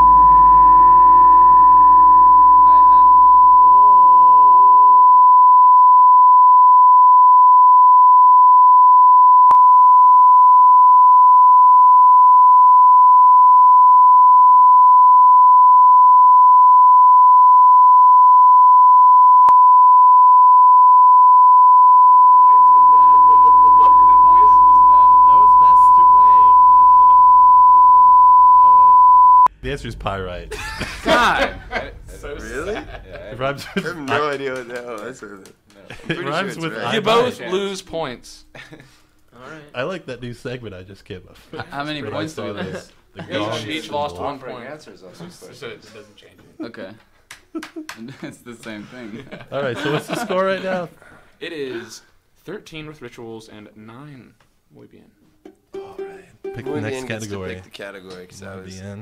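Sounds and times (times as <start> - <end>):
censor bleep tone: 0.0 - 29.5
laughter: 22.6 - 24.6, 30.5 - 34.1, 35.8 - 36.4, 38.5 - 39.0, 47.5 - 50.9.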